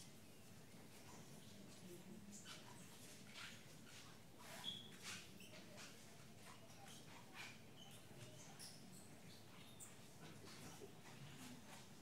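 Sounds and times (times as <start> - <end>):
soft rustles: 0.0 - 12.0
brief high squeaks: 3.4 - 5.9.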